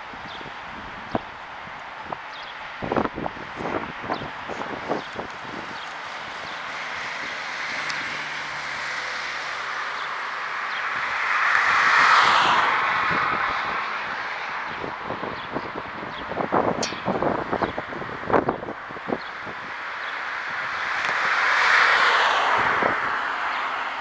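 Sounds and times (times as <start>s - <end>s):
wind on microphone: 0.0s - 10.1s, 10.7s - 21.8s, 22.4s - 23.6s
road traffic: 0.0s - 24.0s
car passing with a whoosh: 2.8s - 15.6s, 16.4s - 24.0s.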